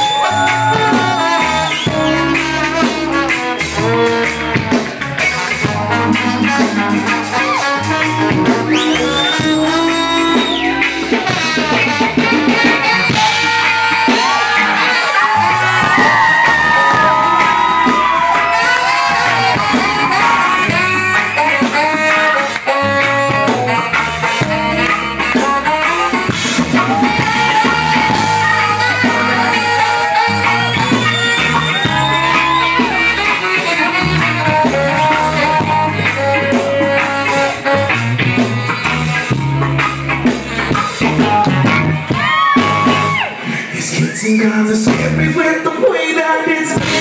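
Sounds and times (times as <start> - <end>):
lead line with bending notes: 0.0 - 43.2
soul band playing: 0.0 - 47.0.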